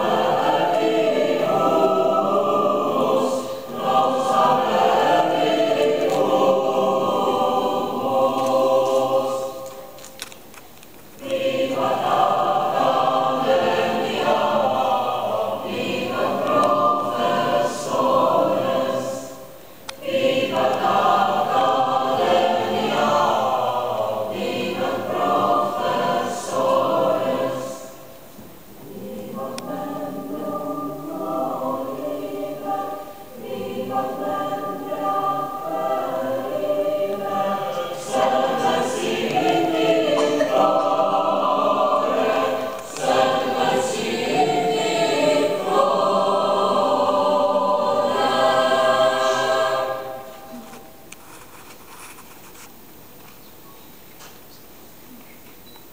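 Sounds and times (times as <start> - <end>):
choir singing: 0.0 - 10.0, 11.2 - 51.1.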